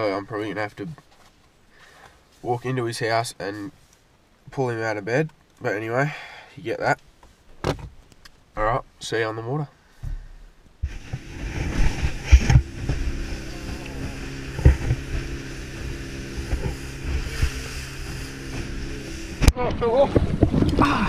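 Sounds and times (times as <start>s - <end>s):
hull thumping on swell: 10.0s - 21.0s
boat engine running: 10.8s - 21.0s.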